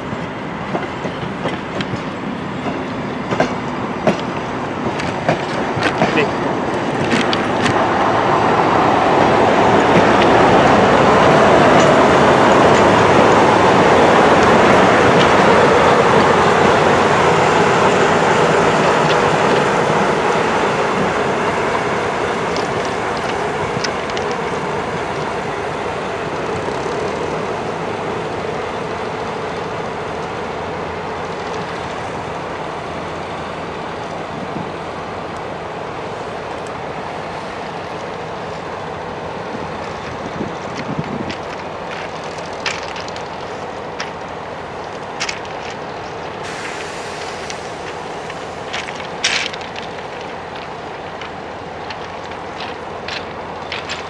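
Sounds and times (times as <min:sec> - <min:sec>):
diesel train passing on track: 0:00.0 - 0:54.0.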